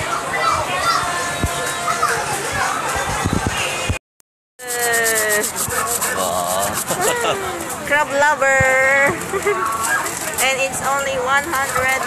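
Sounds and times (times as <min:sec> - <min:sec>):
voices in background: 0:04.6 - 0:12.0.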